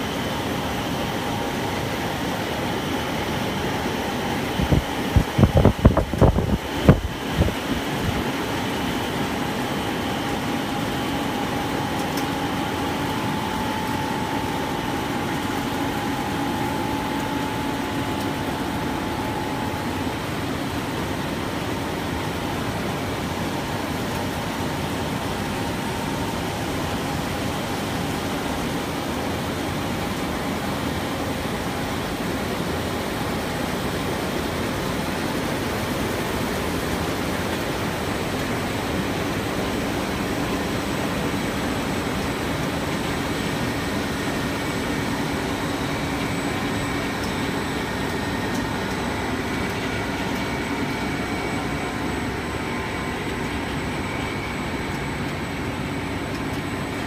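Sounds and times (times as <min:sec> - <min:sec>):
machinery drone with whine: 0:00.0 - 0:57.0.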